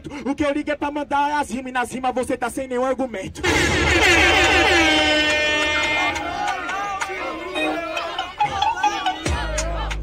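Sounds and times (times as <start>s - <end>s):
rap verse: 0.0s - 10.0s
air horn sound effect: 3.4s - 6.5s.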